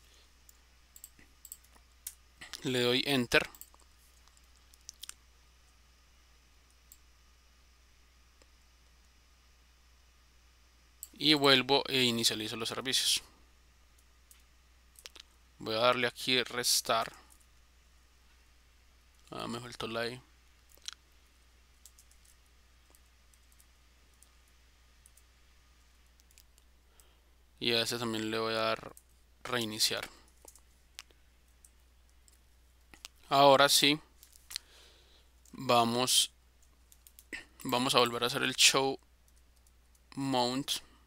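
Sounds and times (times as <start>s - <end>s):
low steady hum: 0.0s - 41.0s
computer mouse clicks: 0.5s - 2.6s, 21.8s - 24.4s.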